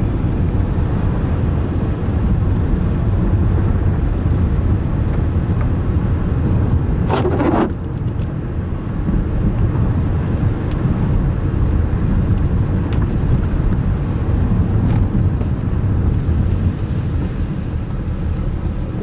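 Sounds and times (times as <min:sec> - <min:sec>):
car engine and tyres rumbling: 0:00.0 - 0:19.0.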